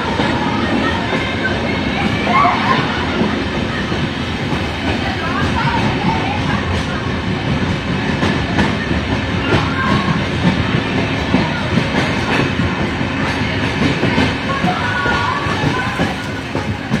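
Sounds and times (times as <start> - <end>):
train wheels rumbling on rail: 0.0 - 17.0.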